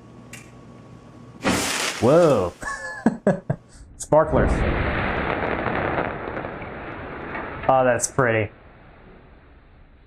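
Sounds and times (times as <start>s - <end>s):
crackling fizz of burning sparks: 1.4s - 3.1s, 4.4s - 9.0s.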